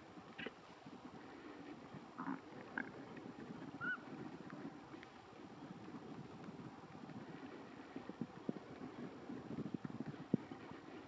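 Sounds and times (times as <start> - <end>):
bird calls and chirps: 3.0 - 4.1.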